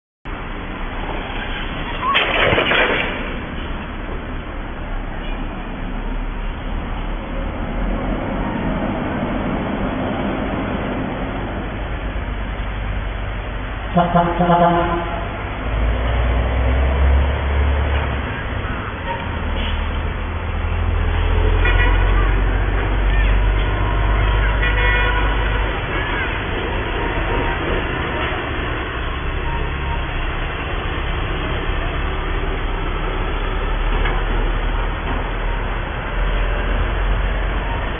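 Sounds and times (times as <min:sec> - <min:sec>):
muffled street traffic: 0:00.3 - 0:37.9
vehicle horn toots: 0:13.9 - 0:15.4, 0:21.5 - 0:22.4, 0:24.1 - 0:26.3.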